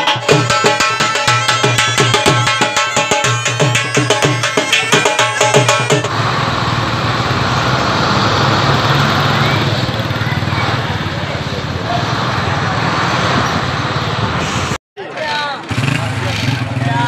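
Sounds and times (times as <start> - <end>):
drum-led music: 0.0 - 6.1
road noise: 0.0 - 17.0
bus engine running: 6.1 - 14.8.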